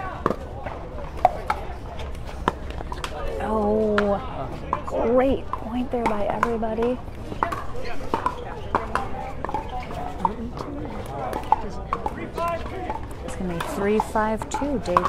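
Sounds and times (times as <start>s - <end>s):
background voices talking: 0.0s - 15.0s
paddles striking pickleballs: 0.0s - 15.0s.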